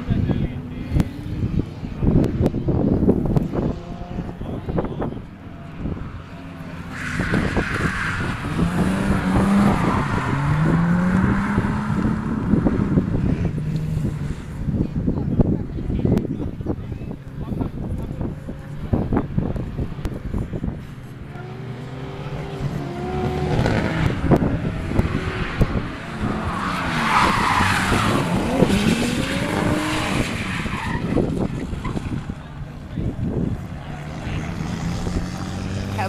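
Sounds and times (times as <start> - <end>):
car engine revving: 0.0 - 36.0
tyre noise on wet track: 6.0 - 14.7, 21.8 - 36.0.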